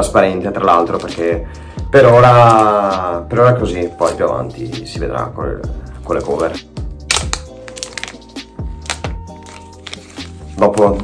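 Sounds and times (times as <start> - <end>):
background music: 0.0 - 11.0
plastic wrap crackling: 2.0 - 3.0, 6.0 - 11.0.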